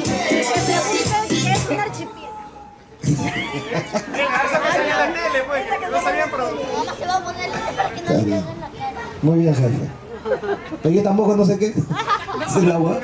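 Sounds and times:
overlapping chatter of people: 0.0 - 13.0.

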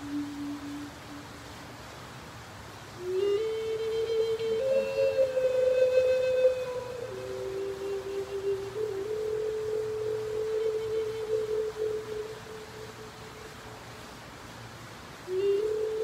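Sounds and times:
flute playing slow melody: 0.0 - 2.0, 2.9 - 14.0, 15.2 - 16.0.

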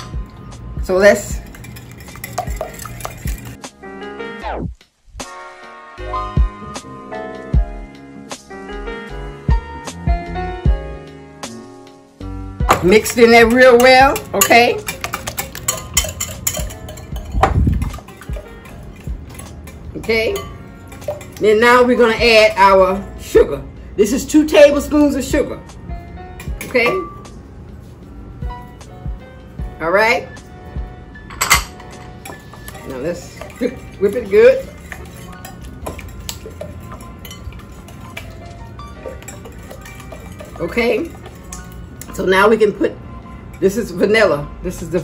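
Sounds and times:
whisk clicking against glass bowl: 1.3 - 3.6, 12.8 - 21.8, 32.2 - 42.1.

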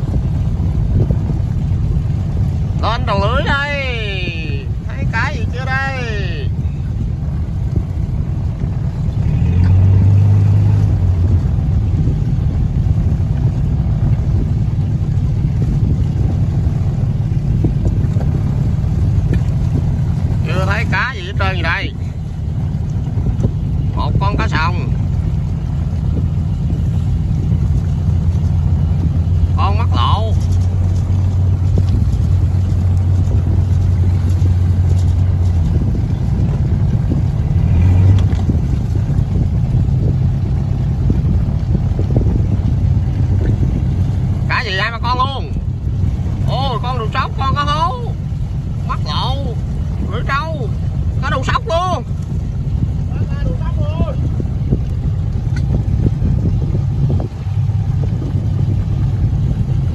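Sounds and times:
boat engine running: 0.0 - 59.9
water washing along hull: 0.0 - 59.9.

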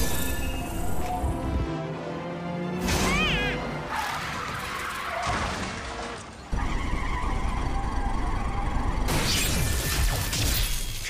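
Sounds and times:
cartoon racing car engine: 4.1 - 9.3.

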